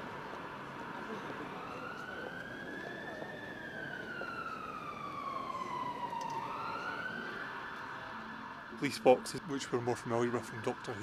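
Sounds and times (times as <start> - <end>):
distant siren wailing: 0.0 - 11.0
street noise: 0.0 - 11.0.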